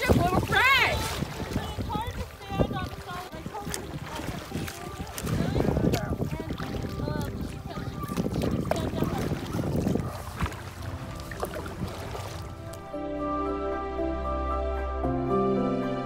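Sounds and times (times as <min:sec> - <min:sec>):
wind on microphone: 0:00.0 - 0:12.9
paddle splashing water: 0:00.0 - 0:13.0.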